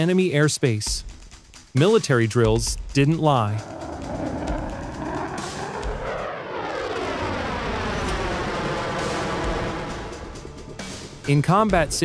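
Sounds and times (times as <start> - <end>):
fighter jet roaring past: 3.1 - 10.7.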